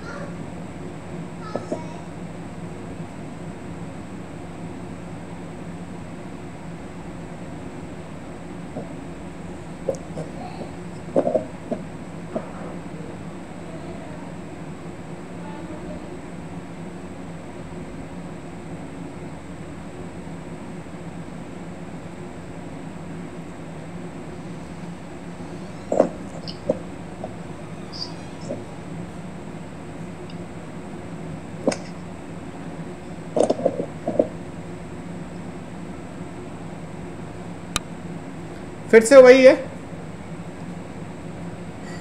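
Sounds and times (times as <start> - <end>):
low background hum: 0.0 - 42.0.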